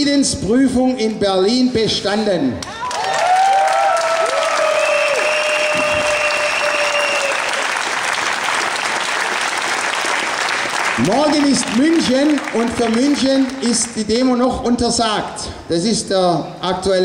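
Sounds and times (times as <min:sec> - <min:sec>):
audience applauding: 0:02.7 - 0:13.6.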